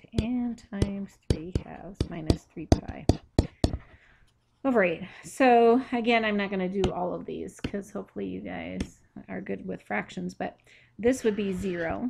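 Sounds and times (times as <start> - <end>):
sharp clicks and taps: 0.0 - 4.0.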